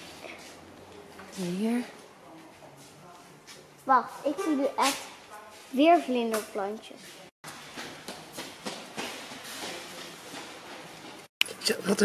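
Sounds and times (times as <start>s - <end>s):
shop background noise: 0.0s - 12.0s.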